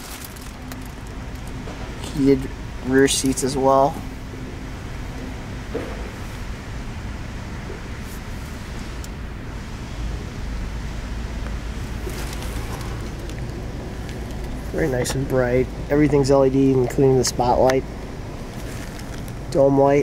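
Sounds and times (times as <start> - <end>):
car engine idling: 0.0 - 20.0
climate fan air hiss: 0.0 - 20.0
light rustle: 11.9 - 15.4, 18.4 - 19.4.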